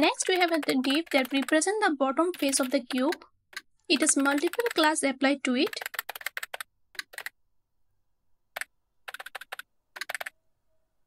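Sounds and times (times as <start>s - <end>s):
computer keyboard typing: 0.0s - 4.9s, 5.6s - 7.4s, 8.5s - 10.4s.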